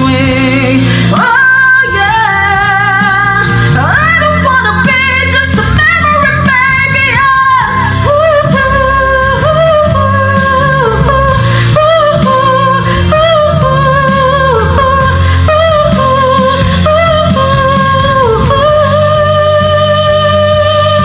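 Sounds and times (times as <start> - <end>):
woman singing a ballad: 0.0 - 21.0.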